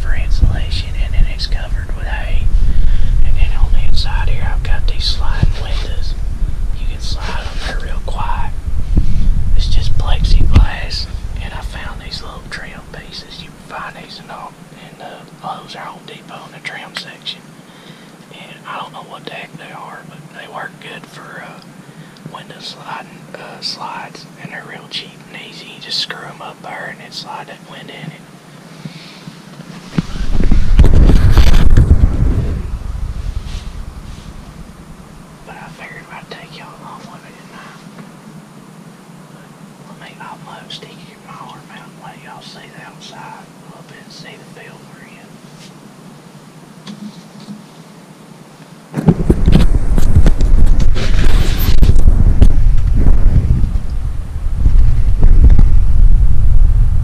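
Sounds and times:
man whispering: 0.0 - 6.2, 6.8 - 8.6, 9.5 - 17.5, 18.3 - 28.3, 30.0 - 30.5, 35.4 - 37.9, 39.4 - 45.4
low rumbles on microphone: 0.0 - 14.6, 29.8 - 36.2, 48.9 - 57.0.

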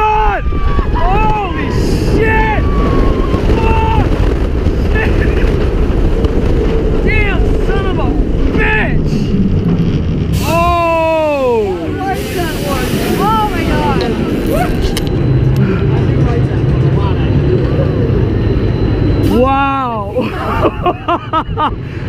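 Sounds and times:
roller coaster train rumbling: 0.0 - 22.0
person shouting: 10.4 - 12.0
riders chattering: 10.4 - 21.0
person laughing: 20.2 - 21.9.

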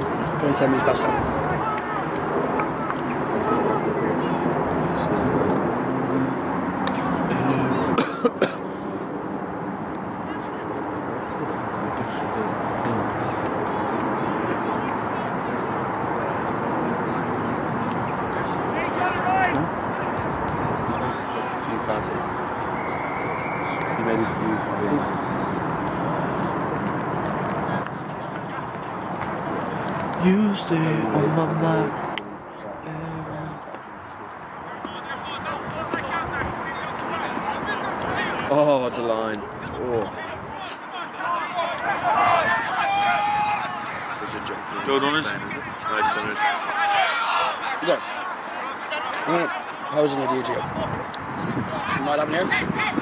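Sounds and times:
murmur of voices: 0.0 - 53.0.

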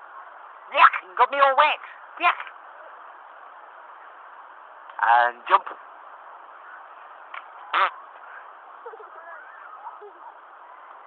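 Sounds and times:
background hiss: 0.0 - 11.0
faint wavering voice: 7.6 - 11.0.

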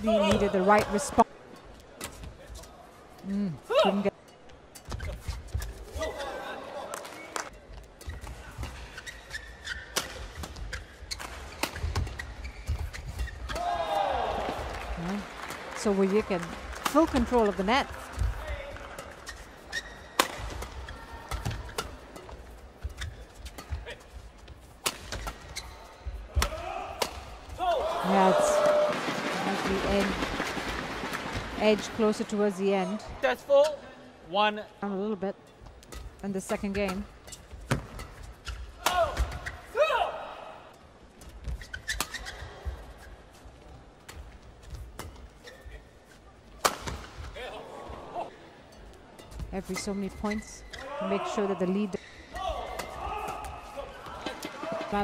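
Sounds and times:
shoes squeaking on court: 4.4 - 6.2, 7.2 - 13.6, 16.9 - 26.3, 35.5 - 39.7, 41.2 - 47.3, 48.7 - 55.0
rackets hitting shuttlecock: 20.1 - 24.0, 24.8 - 25.6, 26.3 - 27.4, 35.8 - 39.6, 46.5 - 47.3.

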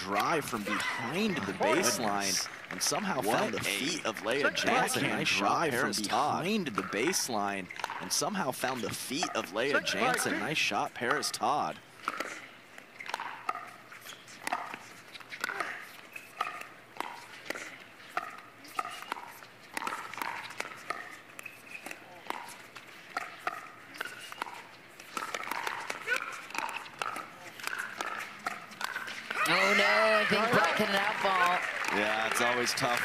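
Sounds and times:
faint voices: 0.0 - 11.8.

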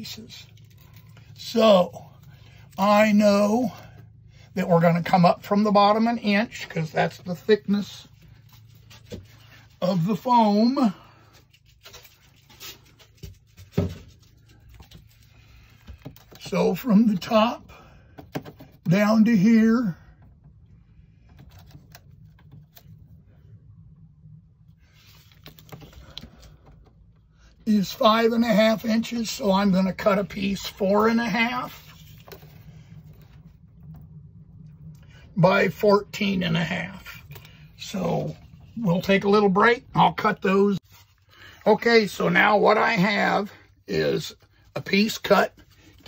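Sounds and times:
low steady hum: 0.0 - 46.0
faint rubbing: 24.6 - 34.5.

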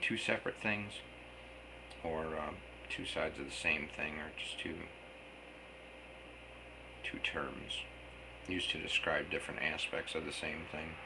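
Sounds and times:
faint hum: 0.0 - 11.0
low steady hiss: 0.0 - 11.0.

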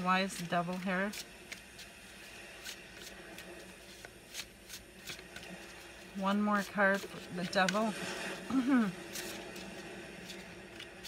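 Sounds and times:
cards shuffling: 0.0 - 11.0.

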